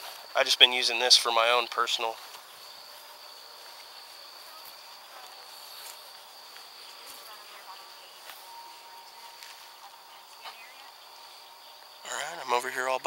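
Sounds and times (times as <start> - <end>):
chorus of night insects: 0.0 - 13.0.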